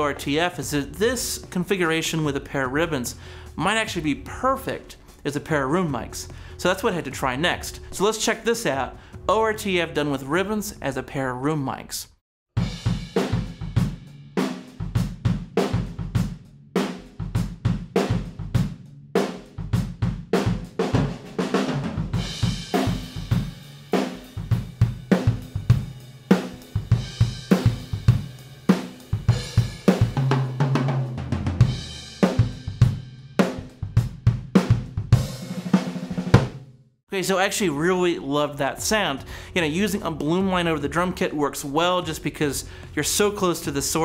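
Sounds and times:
drum kit playing groove: 0:00.0 - 0:10.8, 0:12.6 - 0:36.7, 0:37.6 - 0:44.0.

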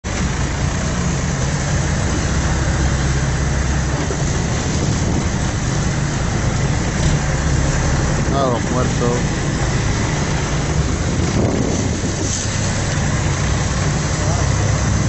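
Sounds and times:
boat engine running: 0:00.0 - 0:15.0
wind and water rushing: 0:00.1 - 0:15.0.

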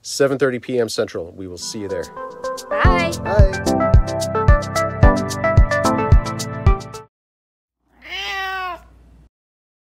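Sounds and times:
cat meowing: 0:07.9 - 0:09.0.

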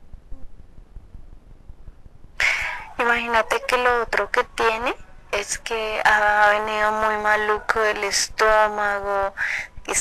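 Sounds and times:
breathy high-pitched voice: 0:02.4 - 0:03.0, 0:09.3 - 0:09.9.

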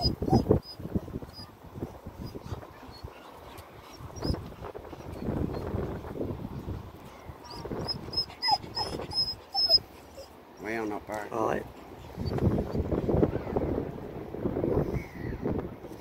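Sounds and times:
high-pitched animal squeaks: 0:00.0 - 0:01.5, 0:07.4 - 0:10.3.

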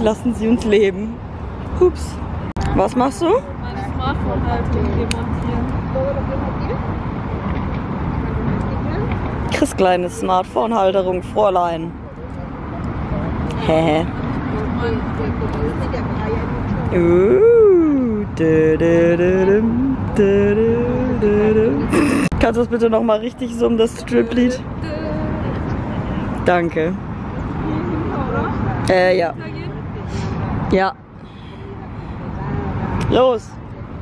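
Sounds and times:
distant road traffic: 0:00.0 - 0:34.0
wind: 0:00.0 - 0:34.0
voices singing da da: 0:16.9 - 0:22.2
two voices humming: 0:16.9 - 0:22.4.

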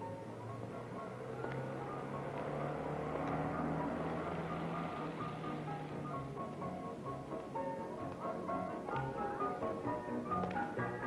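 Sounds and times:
background music: 0:00.0 - 0:11.0
motor vehicle running: 0:00.0 - 0:11.0.

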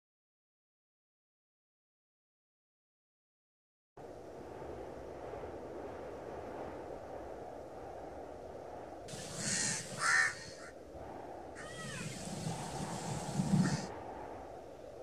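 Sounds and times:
harsh animal calls: 0:09.1 - 0:10.7, 0:11.6 - 0:13.9
low outdoor rumble: 0:09.1 - 0:10.9, 0:11.6 - 0:15.0.

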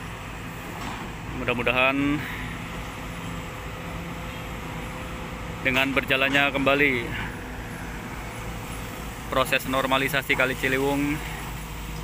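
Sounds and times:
excavator diesel engine drone: 0:00.0 - 0:12.0.

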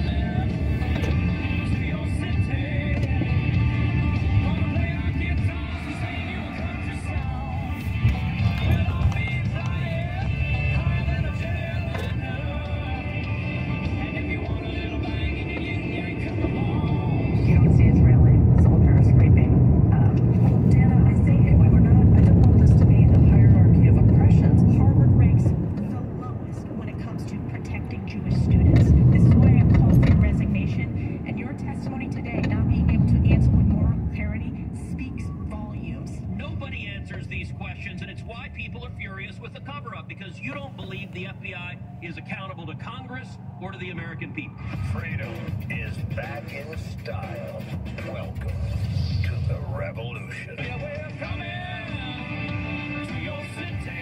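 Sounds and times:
car radio playing: 0:00.0 - 0:54.0
low road rumble: 0:00.0 - 0:54.0.

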